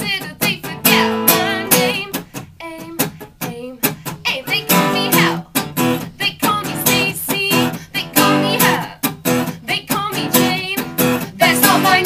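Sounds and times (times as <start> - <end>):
acoustic guitar strumming: 0.0 - 12.0
woman singing: 0.0 - 12.0.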